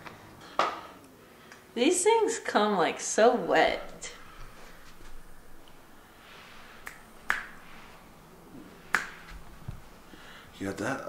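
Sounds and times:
sharp snapping clicks: 6.8s - 7.6s, 8.9s - 9.4s.

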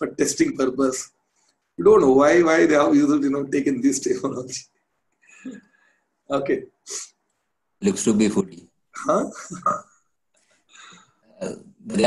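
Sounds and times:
man speaking: 0.0s - 1.2s, 1.8s - 4.7s, 6.3s - 7.2s, 7.8s - 9.9s, 10.8s - 12.0s
man breathing: 10.4s - 11.2s.

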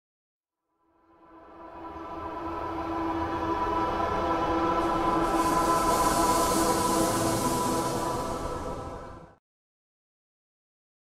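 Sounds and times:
sustained drone with held tones: 1.1s - 9.4s
high hiss: 3.8s - 9.4s.

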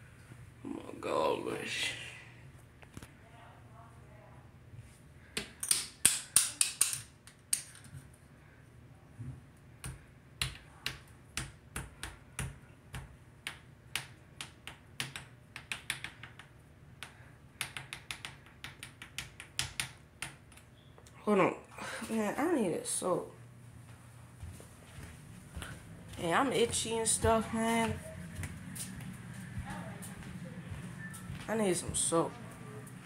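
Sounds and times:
fingers tapping on phone: 9.8s - 20.6s.

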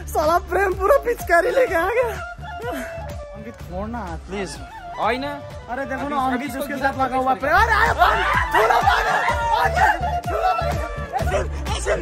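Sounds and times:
background music: 0.0s - 12.0s
young men laughing and shrieking: 7.4s - 12.0s.

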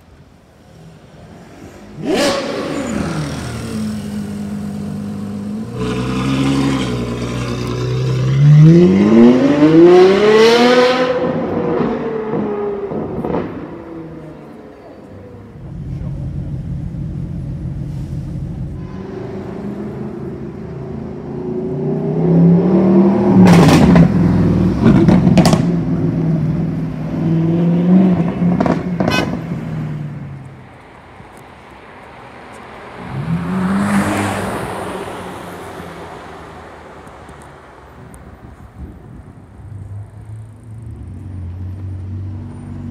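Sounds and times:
traffic drone: 0.0s - 42.9s
exhaust cracks: 24.8s - 25.9s.

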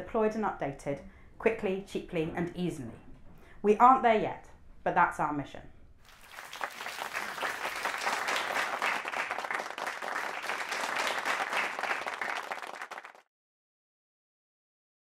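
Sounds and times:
audience applauding: 6.1s - 13.3s.

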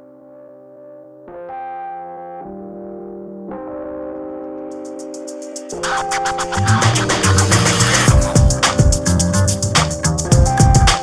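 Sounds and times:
synthesizer keyboard chords: 0.0s - 11.0s.

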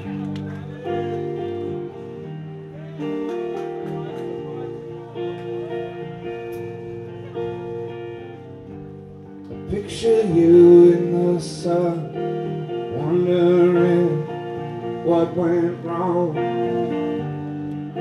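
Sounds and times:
live rock band playing: 0.0s - 18.0s.

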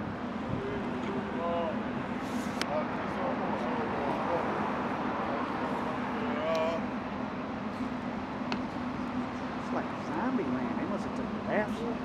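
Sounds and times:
traffic noise with low hum: 0.0s - 12.0s.

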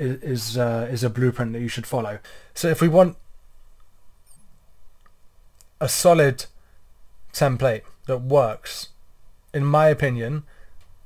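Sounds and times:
man speaking: 0.0s - 3.2s, 5.8s - 6.6s, 7.3s - 9.0s, 9.6s - 10.5s
faint high-pitched chirps: 4.2s - 4.6s.

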